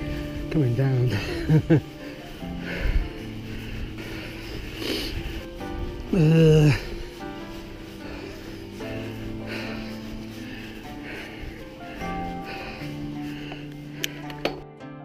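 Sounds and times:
background music of held notes: 0:00.0 - 0:15.0.

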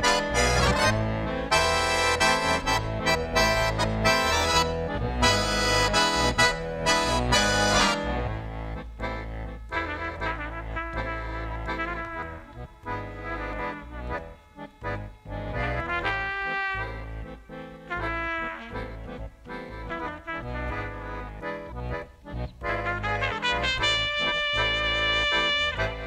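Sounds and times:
trumpet solo melody: 0:00.0 - 0:08.8, 0:09.4 - 0:21.5, 0:22.6 - 0:26.0
band accompaniment: 0:00.0 - 0:22.0, 0:22.6 - 0:26.0
low bass line: 0:00.0 - 0:26.0.

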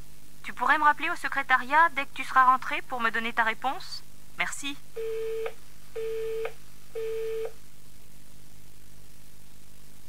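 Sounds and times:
telephone busy tone beeps: 0:05.0 - 0:07.5.

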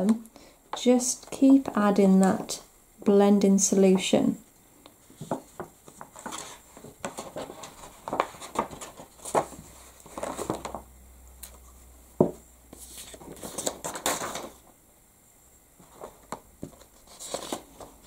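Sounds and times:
stiff paper sheet rustling: 0:05.1 - 0:10.8, 0:12.8 - 0:14.6, 0:15.9 - 0:18.0.

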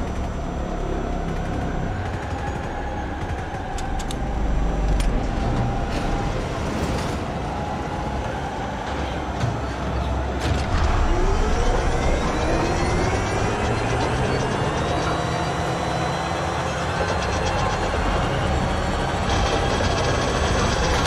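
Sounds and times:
engine and machinery noise: 0:00.0 - 0:21.0
rising whines: 0:00.0 - 0:21.0.

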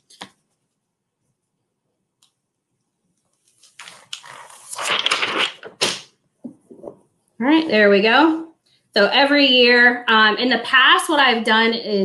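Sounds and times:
plastic sheet peeled off fabric: 0:03.4 - 0:06.0.

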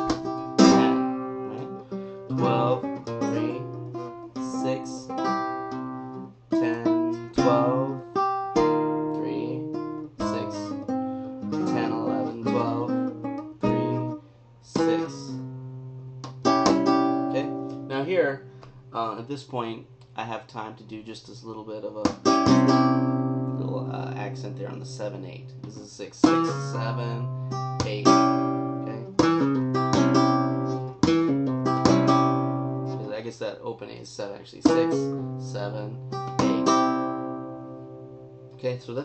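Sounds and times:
flamenco guitar playing: 0:00.0 - 0:14.2, 0:14.8 - 0:19.1, 0:22.1 - 0:33.1, 0:34.7 - 0:38.6.

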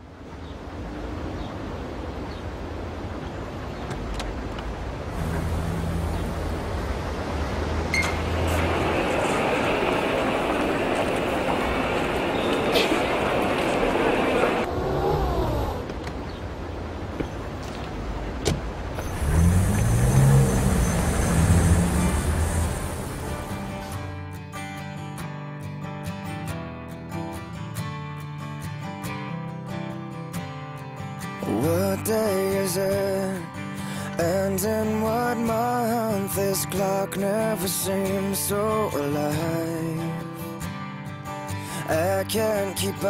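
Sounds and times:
traffic hum: 0:00.0 - 0:24.2
car engine pulling away: 0:05.1 - 0:13.0, 0:18.6 - 0:24.0.

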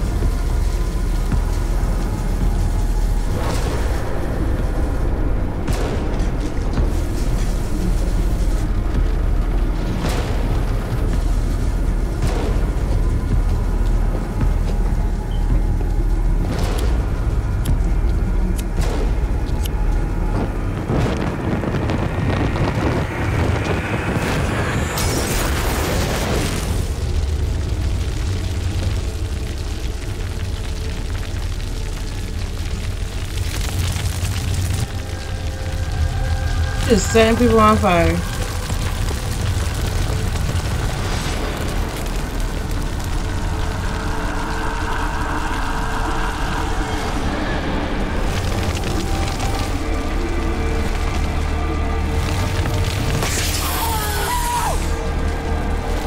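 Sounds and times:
heavy low rumble: 0:00.0 - 0:53.3
dark music: 0:00.0 - 0:56.0
fire whoosh: 0:18.8 - 0:37.3, 0:38.3 - 0:51.3.

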